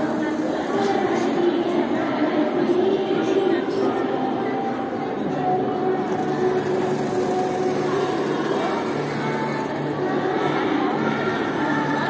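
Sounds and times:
sewing machines running: 0.0s - 1.6s, 5.5s - 12.0s
hubbub of indistinct voices: 0.0s - 12.0s.

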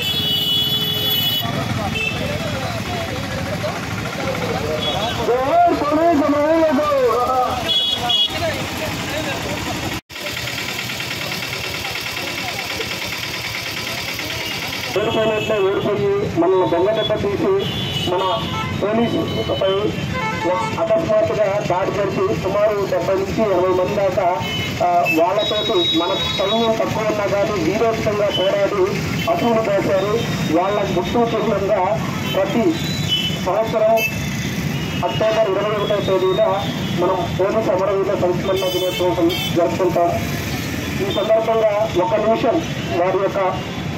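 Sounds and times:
street traffic rumble: 0.0s - 43.9s
vehicle engine idling: 1.0s - 15.1s
man speaking into a microphone: 1.7s - 9.8s, 14.9s - 43.8s.

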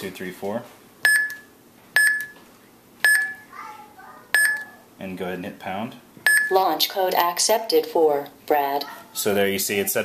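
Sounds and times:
short high beeps: 1.1s - 2.4s, 3.0s - 3.5s, 4.4s - 4.7s, 6.3s - 6.6s.

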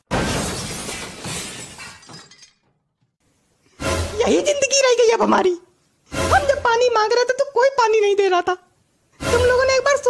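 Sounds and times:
glass shattering: 0.0s - 2.8s.

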